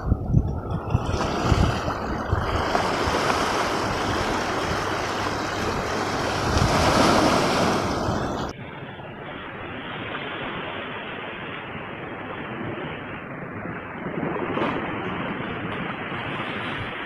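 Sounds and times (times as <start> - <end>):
dull sea wash: 0.0 - 17.0
waves washing over pebbles: 0.5 - 8.5.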